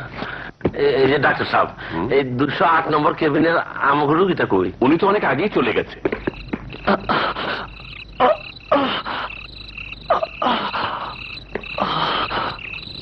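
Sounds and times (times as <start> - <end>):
frogs croaking: 0.0 - 13.0.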